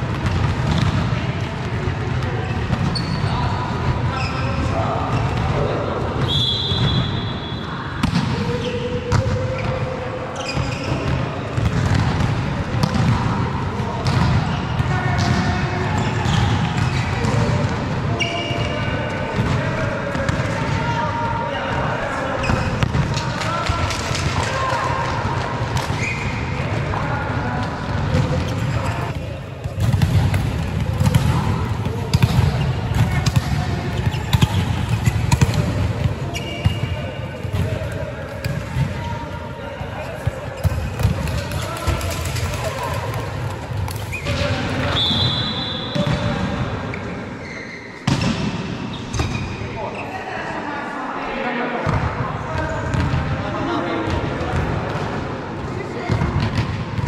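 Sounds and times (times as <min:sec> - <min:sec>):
shoe squeaks: 0:02.8 - 0:03.4, 0:04.1 - 0:05.3, 0:10.4 - 0:11.2, 0:26.0 - 0:26.5, 0:36.2 - 0:37.3, 0:44.1 - 0:44.4, 0:46.9 - 0:48.0
volleyball slaps and thuds: 0:29.6 - 0:39.0, 0:48.0 - 0:49.4.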